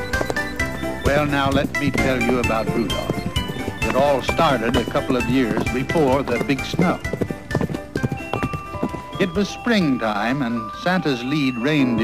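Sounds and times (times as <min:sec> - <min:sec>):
background music with held notes: 0:00.0 - 0:12.0
cartoon horse hooves clip-clopping: 0:00.0 - 0:12.0.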